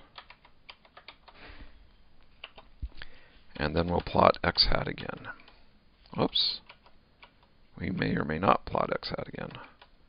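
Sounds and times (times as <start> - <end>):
keyboard typing clicks: 0.0 - 1.4, 2.4 - 2.7.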